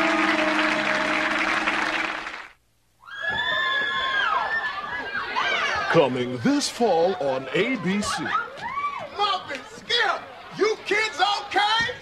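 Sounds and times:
audience applause: 0.0s - 2.6s.

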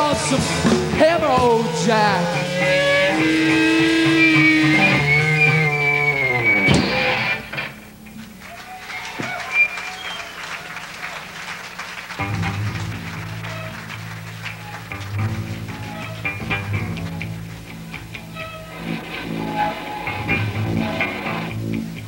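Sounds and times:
live rock band with electric guitars: 0.0s - 8.4s, 11.9s - 22.0s
ringing guitar chord sliding down: 0.6s - 7.8s, 15.1s - 21.8s.

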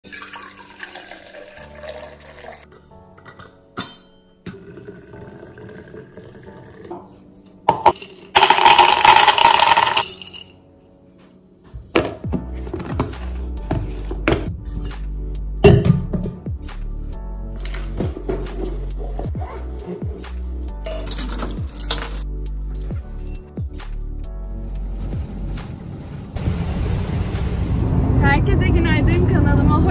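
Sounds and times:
liquid pouring into a cup: 0.0s - 2.7s, 4.5s - 7.0s
background music with a beat: 11.7s - 20.8s, 21.6s - 25.8s
loud rushing burst: 26.2s - 29.0s.

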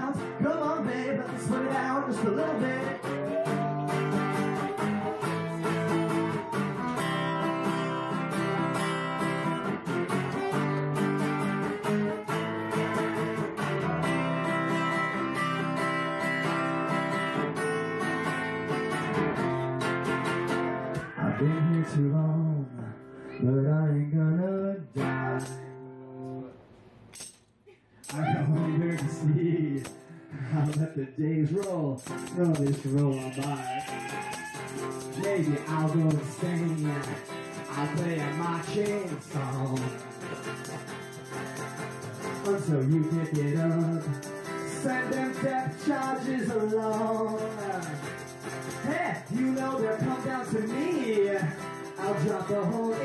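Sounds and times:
acoustic guitar strumming: 0.0s - 23.3s, 24.9s - 26.4s, 28.1s - 53.0s.

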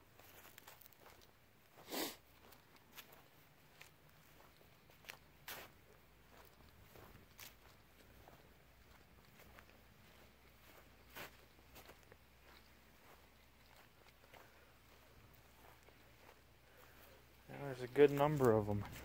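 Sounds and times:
footsteps on grass: 0.0s - 19.0s.

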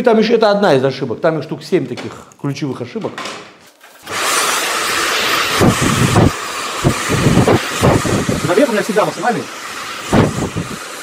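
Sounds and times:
hair dryer blowing: 4.0s - 11.0s.

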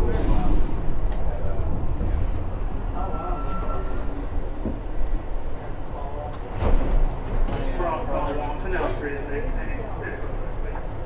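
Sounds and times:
subway car rumble: 0.0s - 11.0s.

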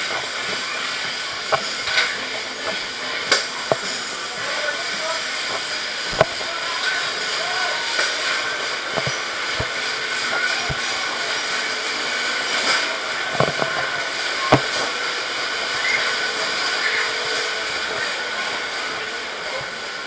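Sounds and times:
hissing machine noise: 0.0s - 20.0s.

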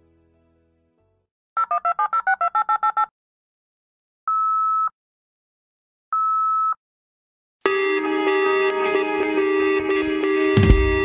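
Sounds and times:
soft music: 0.0s - 1.2s, 7.7s - 11.0s
touch-tone dialing beeps: 4.3s - 4.9s, 6.2s - 6.8s.

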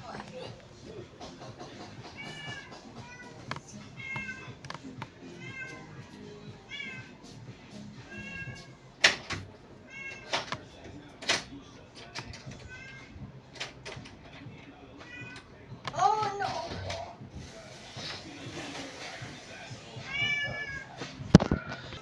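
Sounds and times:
cat mewing: 2.1s - 4.6s, 5.3s - 6.0s, 8.1s - 8.8s, 9.8s - 10.4s, 20.0s - 21.0s.

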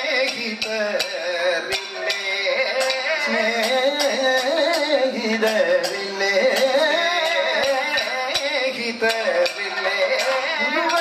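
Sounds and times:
sharp percussion strikes: 0.0s - 11.0s.

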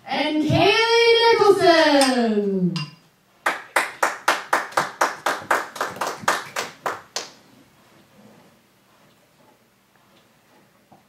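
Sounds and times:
hands clapping: 3.4s - 7.4s.

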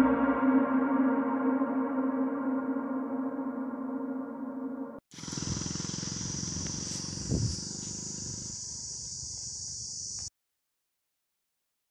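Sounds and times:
rapid low pulsing: 5.2s - 9.2s
high insect chirring: 5.2s - 10.3s.

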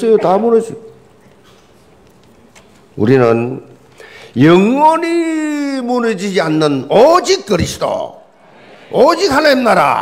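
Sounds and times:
man preaching: 0.0s - 0.9s, 3.0s - 8.3s, 8.9s - 10.0s
faint steady hum: 0.0s - 10.0s.

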